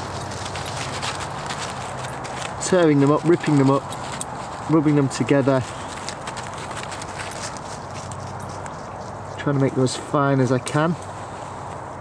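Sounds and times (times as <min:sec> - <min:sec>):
dry bracken tearing and rubbing: 0:00.0 - 0:08.4.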